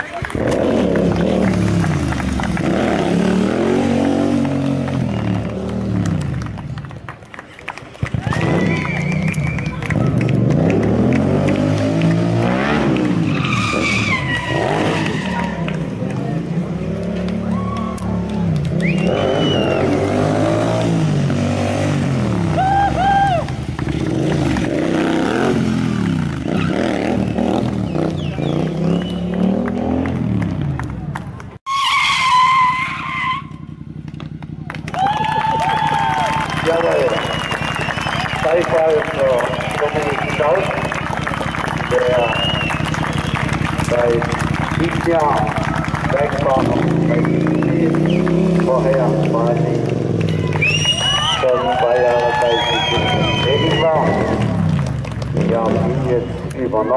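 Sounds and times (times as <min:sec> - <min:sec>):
motorcycle engine revving: 0:00.0 - 0:06.6, 0:08.1 - 0:31.0, 0:33.0 - 0:35.2, 0:36.5 - 0:50.9, 0:52.9 - 0:56.9
tyre squeal: 0:13.2 - 0:15.6, 0:31.7 - 0:33.8.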